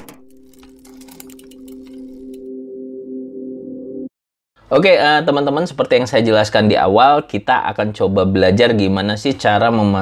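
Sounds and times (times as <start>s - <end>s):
droning chord: 0.1s - 4.1s.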